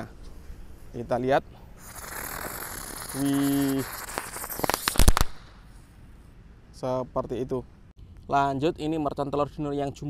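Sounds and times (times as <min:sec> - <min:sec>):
firework fizzing and cracking: 0:01.8 - 0:05.7.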